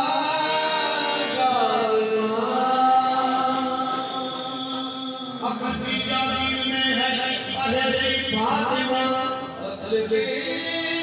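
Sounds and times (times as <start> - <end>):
singers holding long gliding notes: 0.0 - 11.0.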